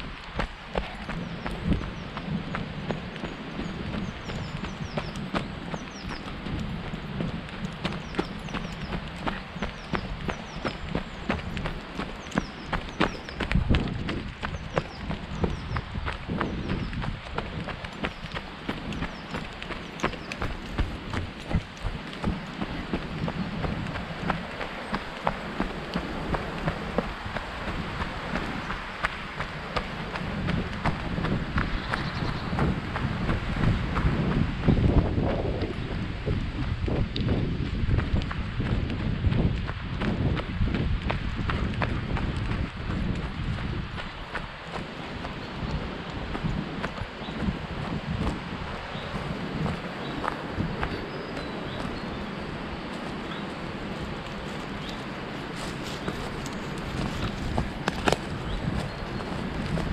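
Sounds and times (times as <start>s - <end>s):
microphone movement rumble: 0.0s - 51.0s, 51.7s - 59.9s
running footsteps on dirt path: 0.0s - 59.9s.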